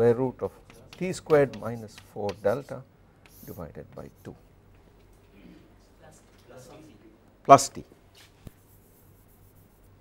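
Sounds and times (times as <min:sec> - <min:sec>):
low room hum: 0:00.0 - 0:10.0
chalk tapping on blackboard: 0:00.4 - 0:04.4
chalk scraping on blackboard: 0:00.5 - 0:04.4, 0:08.5 - 0:10.0.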